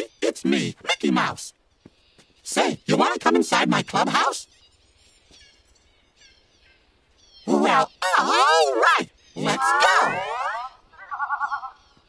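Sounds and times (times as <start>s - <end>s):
downward gliding cartoon tone: 7.5s - 11.8s.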